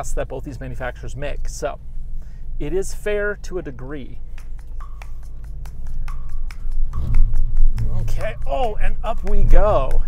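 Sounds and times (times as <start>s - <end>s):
car engine droning: 0.0s - 10.0s.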